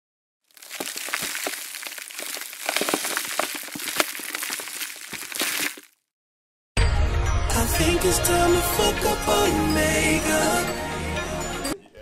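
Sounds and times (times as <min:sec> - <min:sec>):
gritty crackling and crunching: 0:00.5 - 0:06.0.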